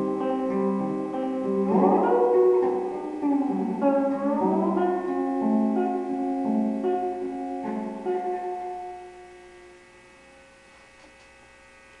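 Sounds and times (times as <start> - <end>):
plucked string instrument ringing: 0.0 - 10.6
electrical mains hum: 0.0 - 12.0.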